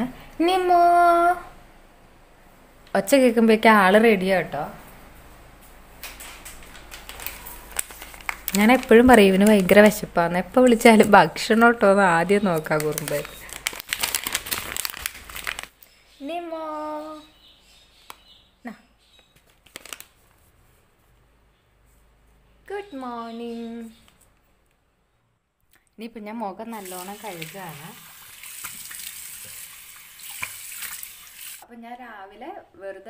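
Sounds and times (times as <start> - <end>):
material crinkling: 6.0 - 10.0, 12.4 - 15.8, 19.2 - 20.8
tap water running into basin: 26.8 - 31.6
water splashing on face: 26.8 - 31.6.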